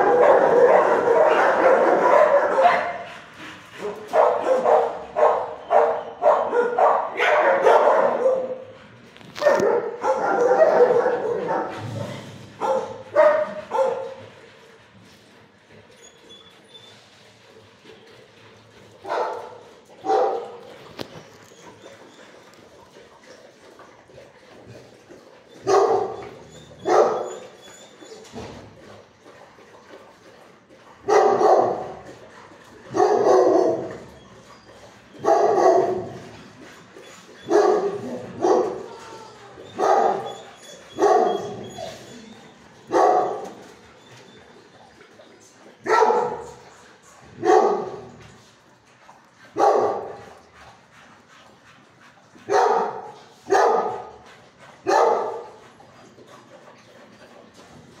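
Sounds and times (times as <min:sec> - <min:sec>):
dog barking with echo: 0:04.2 - 0:08.6.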